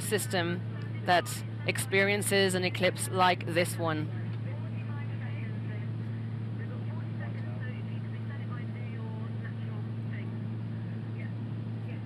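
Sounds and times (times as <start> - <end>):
aircraft engines droning: 0.0 - 12.0
faint voices murmuring: 0.0 - 12.0.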